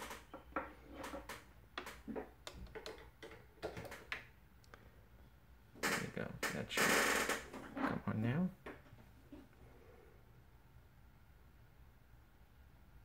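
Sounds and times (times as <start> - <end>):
handling clicks and knocks: 0.0 - 4.3.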